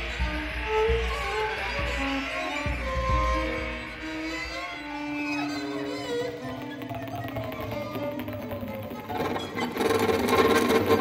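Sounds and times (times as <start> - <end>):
string trio and electronics: 0.0 - 11.0.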